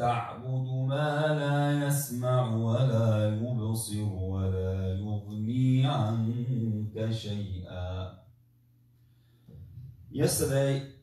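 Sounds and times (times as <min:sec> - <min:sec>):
man chanting recitation: 0:00.0 - 0:08.2, 0:10.1 - 0:11.0.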